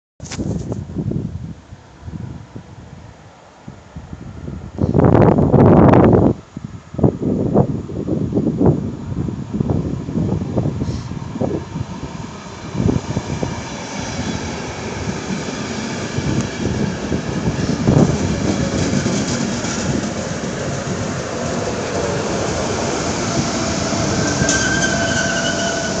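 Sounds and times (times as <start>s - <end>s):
electric locomotive whine: 2.0s - 26.0s
train wheels clattering on rails: 13.7s - 26.0s.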